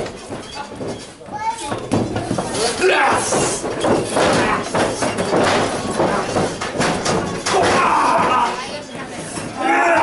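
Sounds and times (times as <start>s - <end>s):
spectators shouting: 9.6s - 10.0s.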